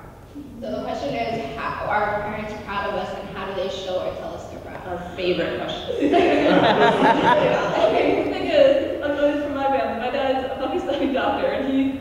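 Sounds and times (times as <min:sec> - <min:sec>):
person speaking: 0:00.3 - 0:10.0.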